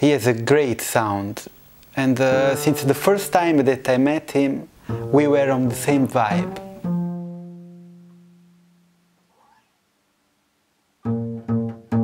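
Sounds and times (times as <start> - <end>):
plucked double bass note: 2.3 - 3.7, 4.9 - 9.2, 11.0 - 12.0.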